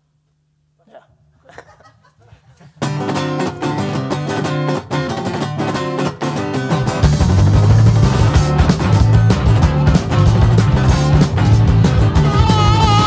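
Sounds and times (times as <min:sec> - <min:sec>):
acoustic guitar strumming: 0:02.8 - 0:13.0.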